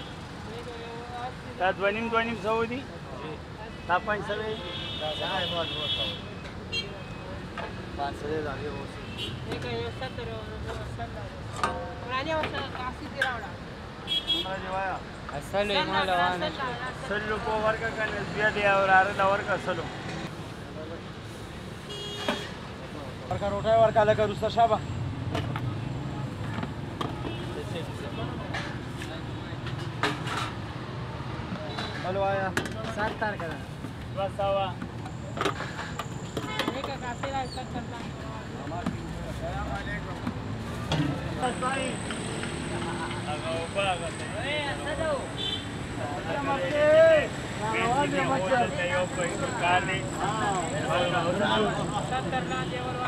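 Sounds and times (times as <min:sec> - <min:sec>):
road traffic rumble: 0:00.0 - 0:53.0
steady background noise: 0:00.0 - 0:53.0
men talking: 0:01.5 - 0:09.6, 0:14.4 - 0:21.4, 0:22.8 - 0:26.6, 0:27.3 - 0:29.8, 0:31.4 - 0:35.6, 0:37.3 - 0:53.0.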